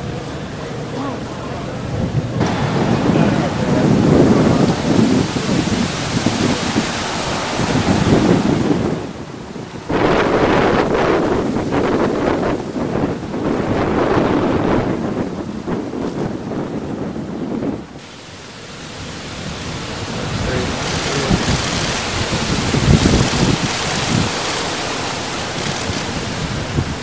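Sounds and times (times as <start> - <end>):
wind buffeting the microphone: 0.0 - 27.0.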